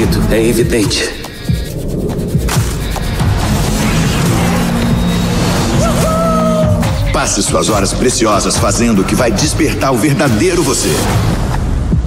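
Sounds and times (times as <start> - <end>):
loud rushing roar: 1.3 - 8.5
rising pitched tone: 1.5 - 7.7.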